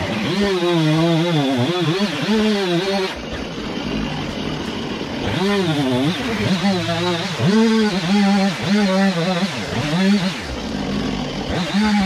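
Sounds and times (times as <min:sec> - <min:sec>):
chainsaw revving: 0:00.0 - 0:12.0.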